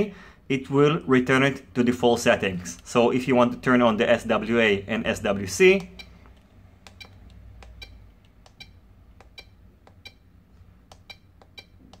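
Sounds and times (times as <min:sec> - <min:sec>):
low steady hum: 0:00.0 - 0:12.0
high key-press beeps: 0:05.8 - 0:12.0.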